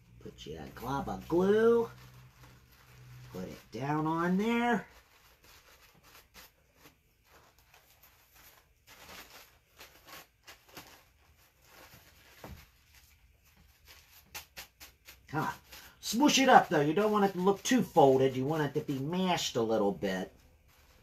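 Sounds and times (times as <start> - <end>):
paper crinkling and rustling: 0.2 - 21.0.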